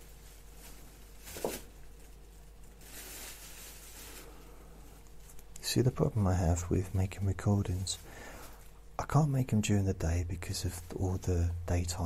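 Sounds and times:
low electrical hum: 0.0s - 12.0s
breathy rustle: 2.8s - 5.2s, 7.8s - 8.8s.

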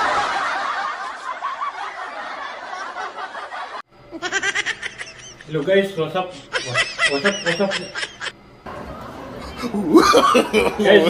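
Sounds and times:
canned laughter: 0.0s - 8.4s, 9.4s - 11.0s.

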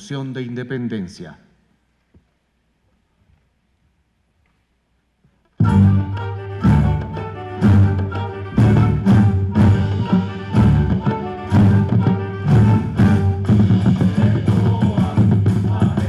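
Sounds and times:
violins and guitars dance tune: 5.6s - 15.1s.

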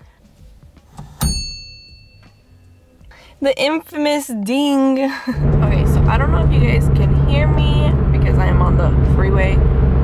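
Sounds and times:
bright metallic ding: 1.2s - 3.0s.

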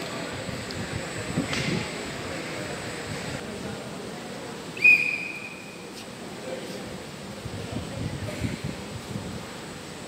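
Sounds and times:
low hall background noise: 0.0s - 10.0s
whistle blast: 4.8s - 5.9s.

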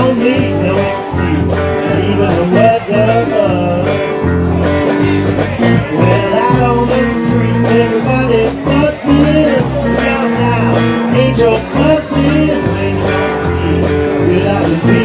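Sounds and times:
bass notes: 0.0s - 15.0s
drums: 0.0s - 15.0s
electric guitar: 0.0s - 15.0s.

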